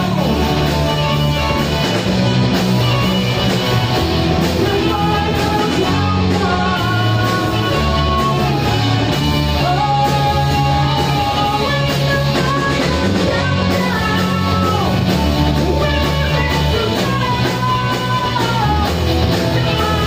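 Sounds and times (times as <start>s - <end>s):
live rock band playing: 0.0s - 20.0s
man singing into a microphone: 4.5s - 20.0s.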